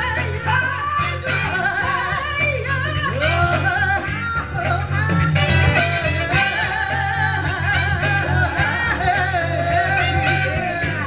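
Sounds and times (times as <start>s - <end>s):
live band playing: 0.0s - 11.0s
woman singing: 0.0s - 11.0s.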